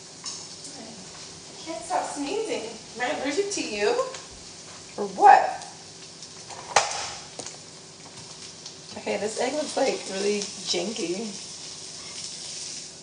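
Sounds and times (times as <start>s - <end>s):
egg sizzling in a pan: 0.0s - 13.0s.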